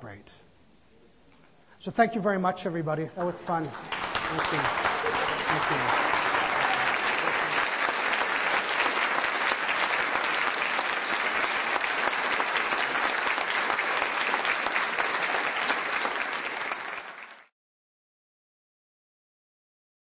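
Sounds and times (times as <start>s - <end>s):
large audience applauding: 3.2s - 17.5s.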